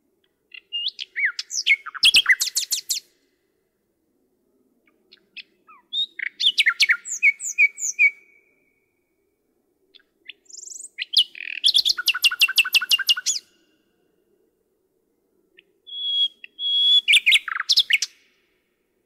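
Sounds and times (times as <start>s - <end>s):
nightingale singing: 0.2s - 3.2s, 4.8s - 9.3s, 9.9s - 13.8s, 15.5s - 18.5s.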